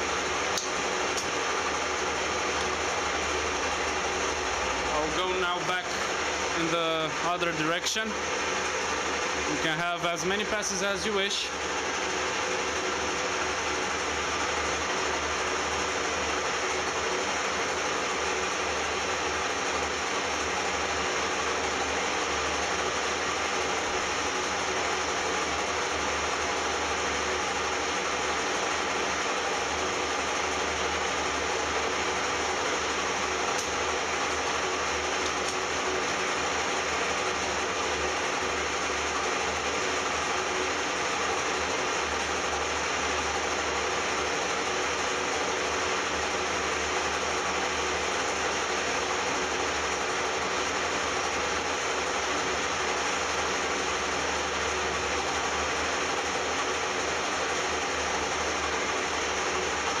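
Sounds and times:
metal lathe running: 0.0s - 60.0s.

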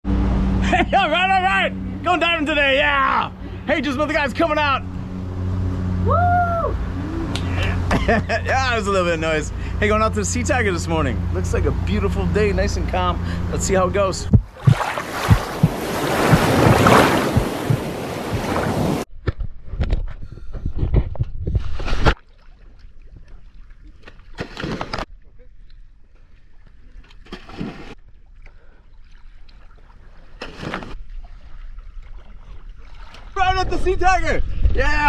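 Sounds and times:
water rushing splash: 14.3s - 19.1s.

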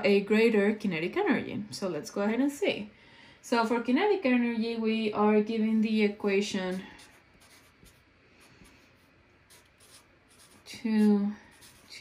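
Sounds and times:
marker scratching on paper: 6.7s - 12.0s.

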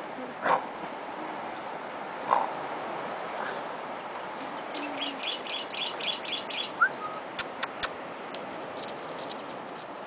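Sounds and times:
small bird chirping: 4.7s - 6.9s, 8.7s - 9.6s.

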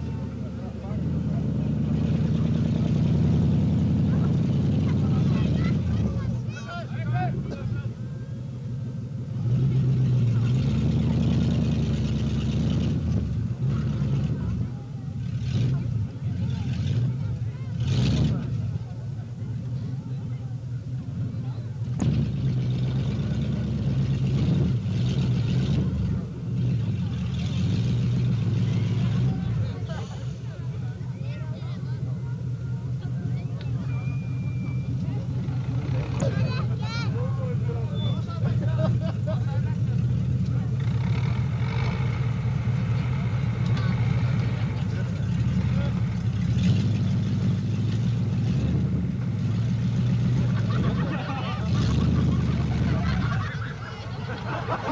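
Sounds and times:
vehicle engine running at low revs: 0.0s - 54.9s
spectators' voices: 3.9s - 9.6s, 14.2s - 22.0s, 28.3s - 46.4s, 50.1s - 54.9s.

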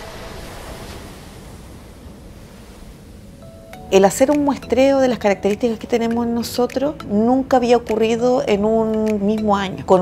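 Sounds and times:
sea water rushing and splashing: 0.0s - 3.8s.

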